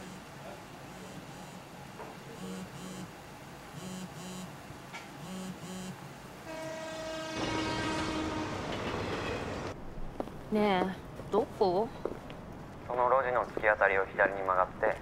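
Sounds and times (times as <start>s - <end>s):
sustained horn-like tone: 5.3s - 9.2s.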